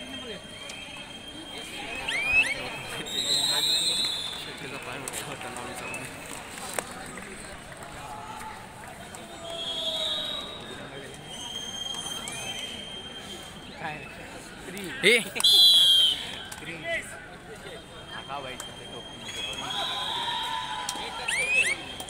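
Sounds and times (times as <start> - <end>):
players and onlookers shouting: 19.5 - 22.0.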